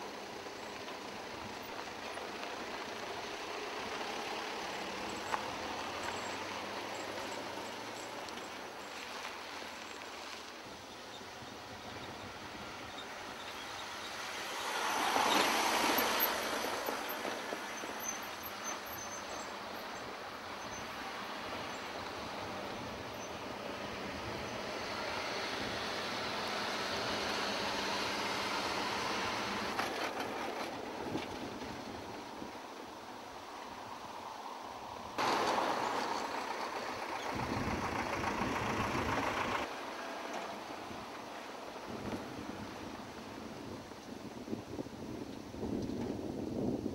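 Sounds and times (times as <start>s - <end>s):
vehicles driving past: 0.0s - 46.2s.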